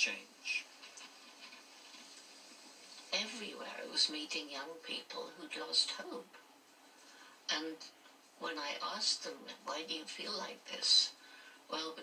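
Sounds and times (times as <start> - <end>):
faint even hiss: 0.0 - 12.0.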